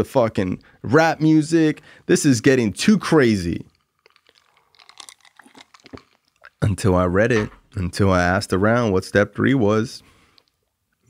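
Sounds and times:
small clicks and ticks: 0:03.7 - 0:06.6, 0:10.3 - 0:11.0.

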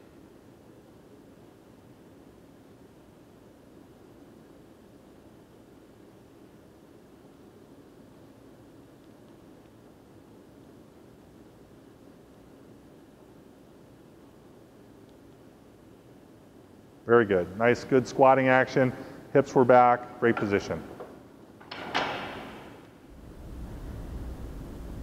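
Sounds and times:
low room hum and hiss: 0:00.0 - 0:25.0.

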